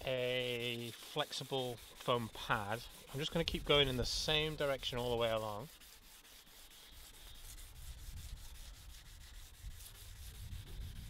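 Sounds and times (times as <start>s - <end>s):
sandpaper scraping plastic: 0.0s - 11.0s.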